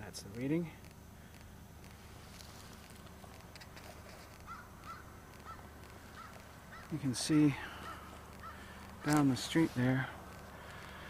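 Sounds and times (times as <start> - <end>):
low steady rumble: 0.0 - 11.0
bird short calls: 4.4 - 9.2.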